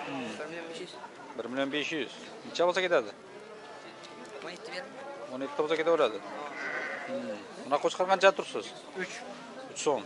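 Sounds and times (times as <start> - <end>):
sheep bleating: 6.4 - 7.4.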